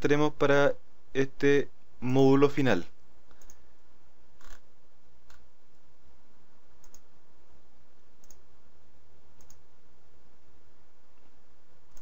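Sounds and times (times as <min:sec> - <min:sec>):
steady low background hum: 0:00.0 - 0:12.0
computer mouse clicking: 0:03.3 - 0:03.6, 0:04.4 - 0:04.6, 0:06.8 - 0:07.1, 0:08.2 - 0:08.4, 0:09.4 - 0:09.6.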